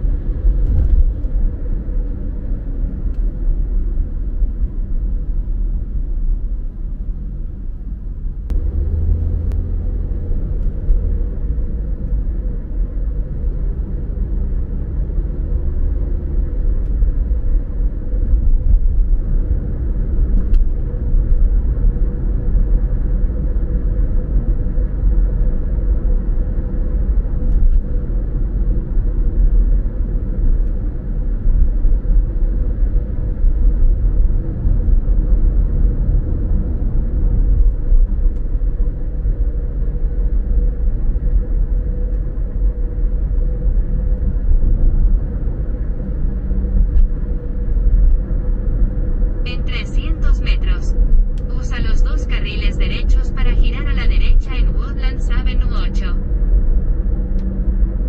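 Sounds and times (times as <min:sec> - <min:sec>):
car driving at road speed: 0:00.0 - 0:58.0
faint steady hum: 0:16.5 - 0:58.0.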